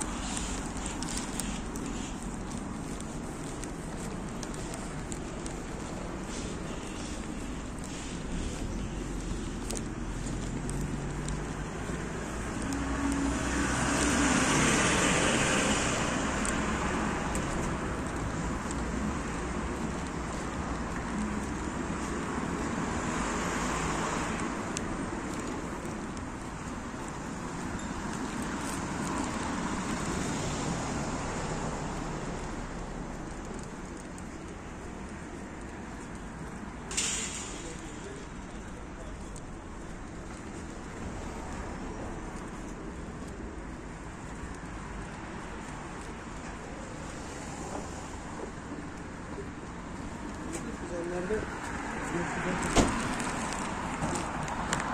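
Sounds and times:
cars passing: 0:00.0 - 0:54.9.

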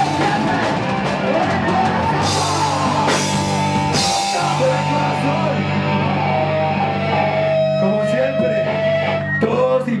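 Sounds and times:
electric guitar and bass chord: 0:00.0 - 0:09.4.

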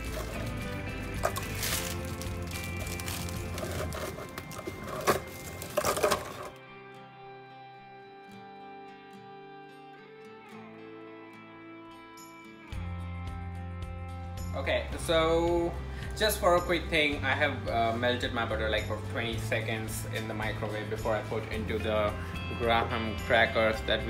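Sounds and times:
plastic wrapper rustling: 0:00.0 - 0:06.5
crackers clattering into blender jar: 0:00.0 - 0:06.6
background music: 0:00.0 - 0:24.0.

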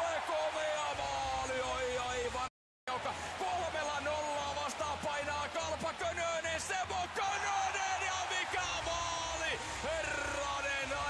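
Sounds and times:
crowd noise: 0:00.0 - 0:11.0.

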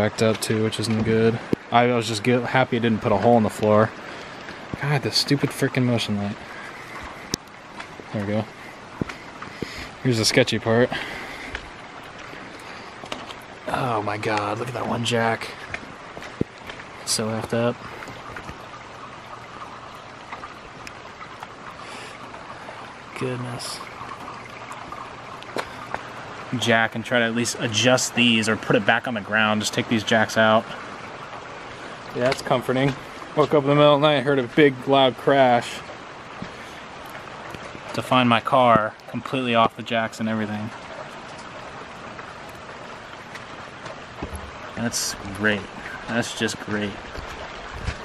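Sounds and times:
pouring rain hiss: 0:00.0 - 0:48.0
raindrops tapping: 0:00.0 - 0:48.0.

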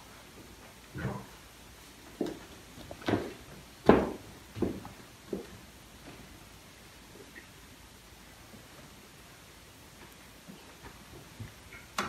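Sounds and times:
wooden knocks and thuds: 0:03.0 - 0:05.5.

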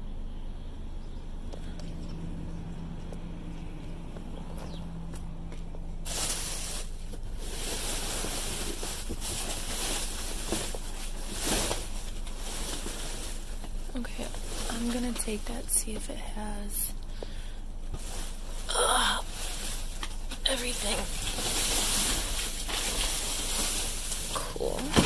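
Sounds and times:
low steady hum: 0:00.0 - 0:25.0
trash bags and boxes rustling: 0:05.7 - 0:25.0.

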